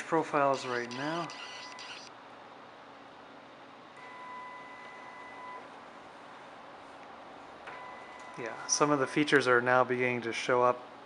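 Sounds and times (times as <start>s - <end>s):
high motor whine: 0.0s - 2.1s
equipment hum and hiss: 0.0s - 11.0s.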